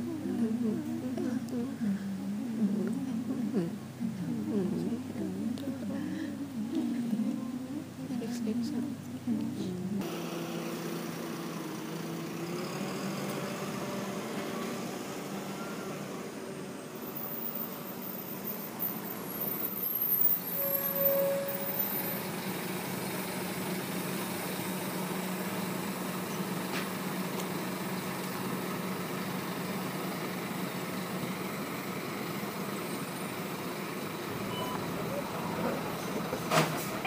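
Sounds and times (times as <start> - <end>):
low constant hum: 0.0 - 10.1
brief tone: 15.5 - 16.0, 20.2 - 22.3, 34.4 - 35.2.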